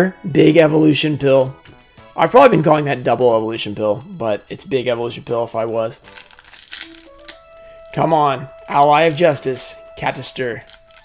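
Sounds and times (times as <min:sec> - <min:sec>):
quiet background music: 0:00.0 - 0:11.0
foil wrapper crinkling: 0:05.6 - 0:11.0.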